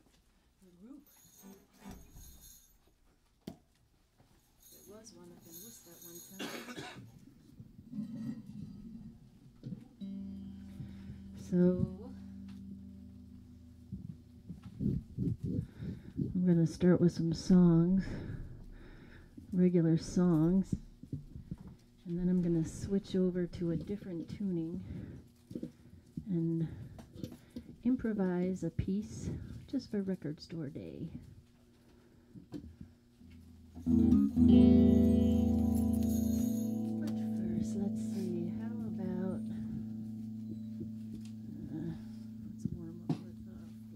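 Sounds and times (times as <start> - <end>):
steady low hum: 6.7 - 28.0, 31.0 - 43.9
electric guitar ringing: 9.6 - 16.2, 33.2 - 43.9
woman speaking into microphone: 11.4 - 12.2, 16.3 - 18.2, 19.6 - 20.8, 22.1 - 24.8, 37.0 - 39.8, 41.6 - 43.7.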